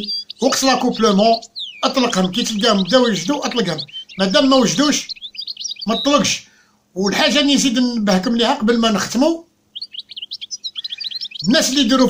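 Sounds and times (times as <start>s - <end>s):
goldfinch twittering chirps: 0.0s - 6.4s, 7.2s - 12.0s.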